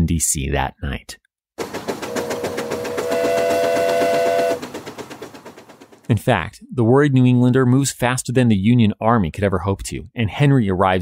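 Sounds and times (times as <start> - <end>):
steam locomotive chuffing: 1.6 - 6.2
steam locomotive whistle: 2.0 - 4.7.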